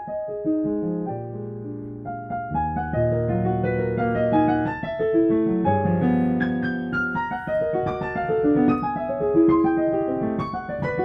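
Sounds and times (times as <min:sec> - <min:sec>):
solo piano music: 0:00.0 - 0:11.0.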